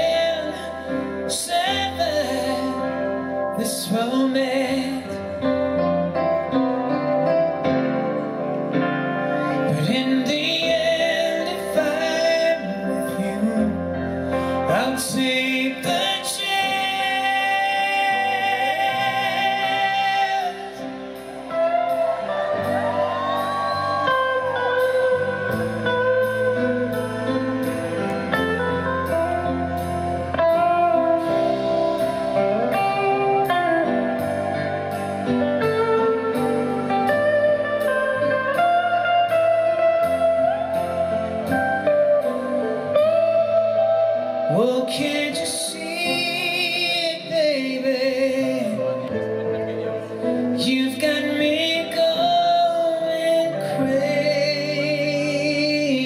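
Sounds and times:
electric guitar melody: 0:00.0 - 0:56.0
grand piano: 0:00.0 - 0:56.0
man singing a long note: 0:09.6 - 0:26.7, 0:44.4 - 0:56.0.

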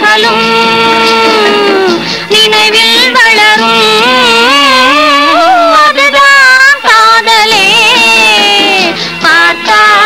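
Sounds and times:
woman singing: 0:00.0 - 0:10.0.

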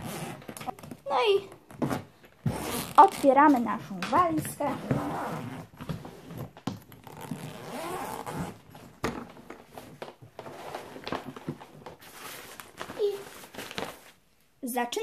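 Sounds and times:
suitcase zipper opening: 0:00.0 - 0:00.9, 0:01.7 - 0:03.3, 0:04.6 - 0:08.9.

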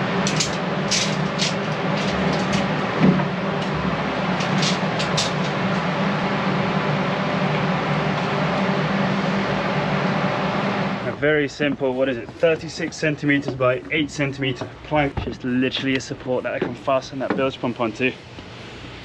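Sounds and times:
electric fan whirring: 0:00.0 - 0:19.0.

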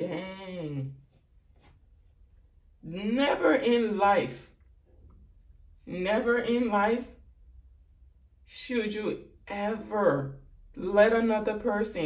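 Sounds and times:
person speaking: 0:00.0 - 0:04.5.

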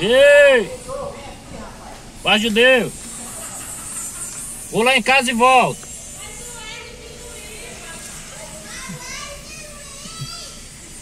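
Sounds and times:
faint high-pitched voices: 0:05.9 - 0:11.0.

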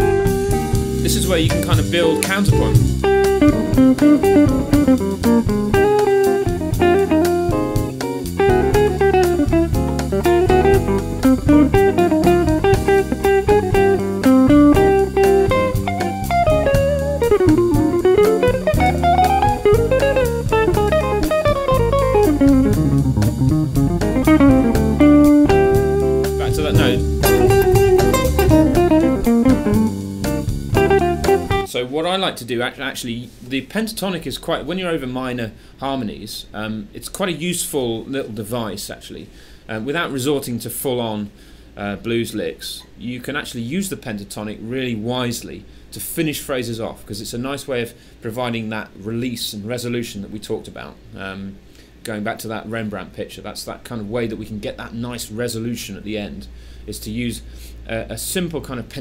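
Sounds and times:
bossa nova backing bass and drums: 0:00.0 - 0:31.7
electric jazz guitar: 0:00.0 - 0:31.7.

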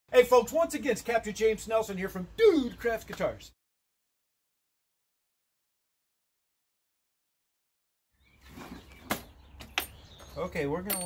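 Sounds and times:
workshop background: 0:00.1 - 0:03.6, 0:08.4 - 0:11.0.

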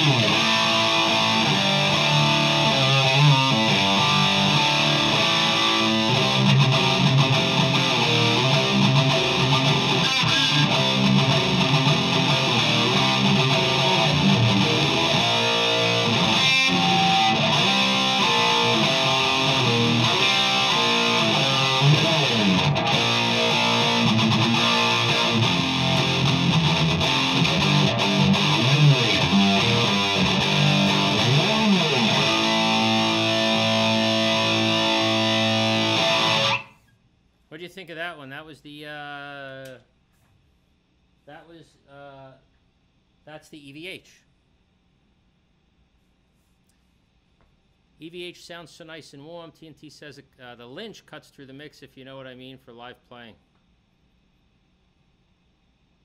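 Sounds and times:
electric guitar playing: 0:00.0 - 0:36.7.

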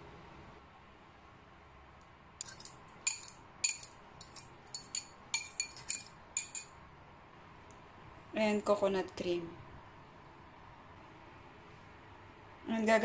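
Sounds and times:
metal spoon clinking glass bowl: 0:02.4 - 0:06.8.

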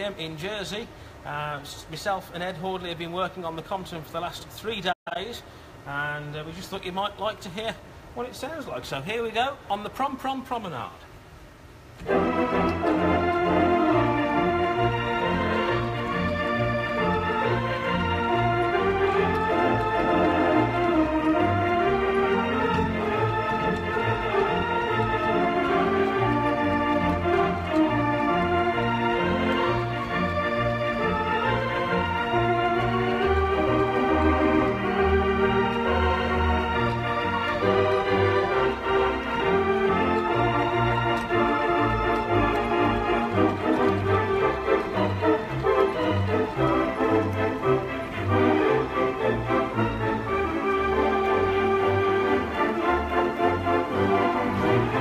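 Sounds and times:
theatre pipe organ playing: 0:00.0 - 0:05.3, 0:11.6 - 0:55.0.

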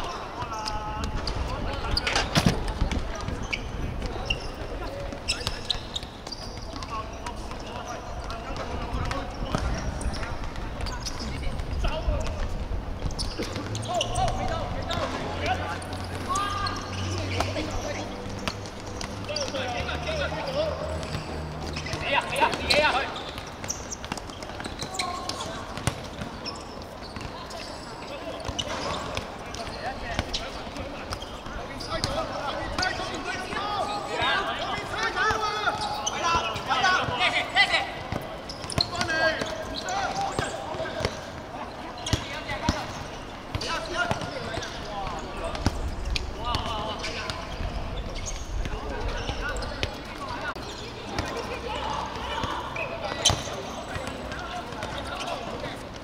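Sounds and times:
balls kicked and bouncing: 0:00.0 - 0:56.0
players shouting: 0:29.7 - 0:42.7.

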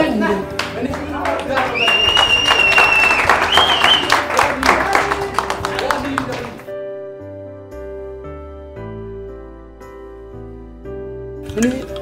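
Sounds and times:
music: 0:00.0 - 0:12.0
group clapping in rhythm: 0:00.4 - 0:06.7.

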